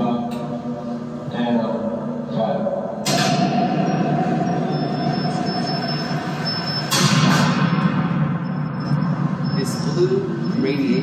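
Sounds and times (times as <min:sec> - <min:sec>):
loud rumbling noise: 0:00.0 - 0:11.0
mid-pitched hum: 0:00.0 - 0:11.0
loud rushing noise: 0:03.0 - 0:11.0.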